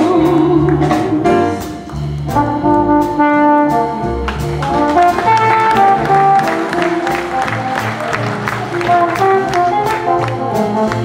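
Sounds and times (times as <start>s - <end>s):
jazz band playing: 0.0s - 11.0s
trombone melody: 0.0s - 11.0s.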